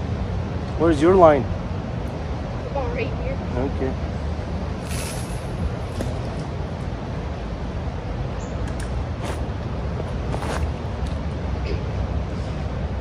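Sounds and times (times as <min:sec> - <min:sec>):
low outdoor rumble: 0:00.0 - 0:13.0.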